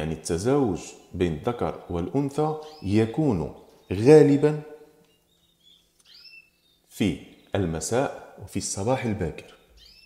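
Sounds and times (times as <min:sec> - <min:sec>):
canaries chirping: 0:00.0 - 0:10.0.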